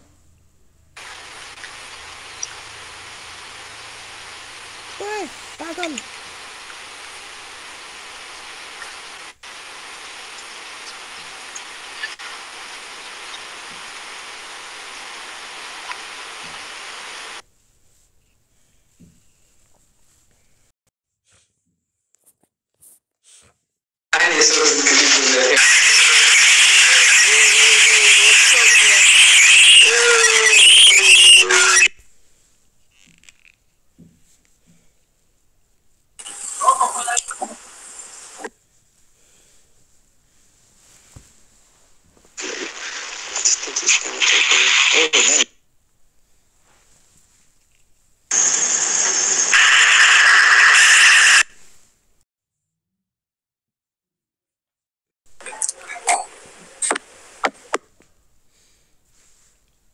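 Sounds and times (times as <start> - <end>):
harsh voice-like sounds: 5.0 - 6.1, 24.2 - 31.9.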